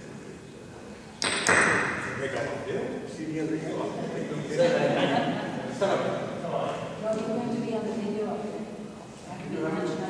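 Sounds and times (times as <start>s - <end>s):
sharp knock: 1.2s - 2.2s.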